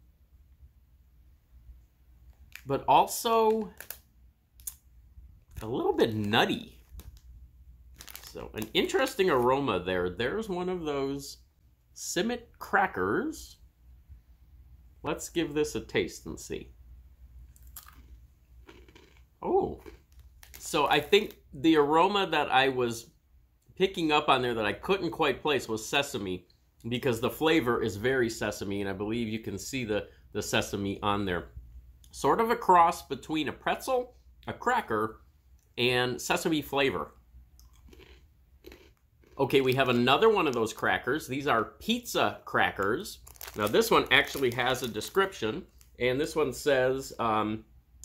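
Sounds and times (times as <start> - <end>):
faint crunches: 3.5 - 4.0, 5.5 - 7.3, 7.9 - 9.6, 17.5 - 21.4, 37.6 - 40.8, 42.8 - 46.0
person chewing cracker: 4.6 - 4.8, 8.0 - 8.9, 17.5 - 21.3, 37.6 - 40.7, 43.2 - 45.1.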